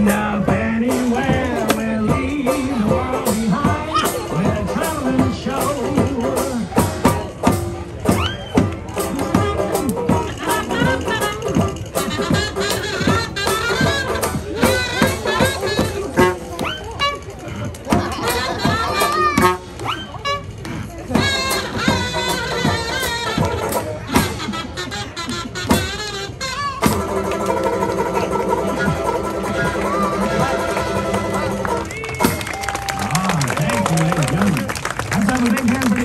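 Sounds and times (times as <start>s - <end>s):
drum strokes: 0.0s - 32.6s
one-man band playing: 0.0s - 36.0s
onlookers' voices: 0.0s - 36.0s.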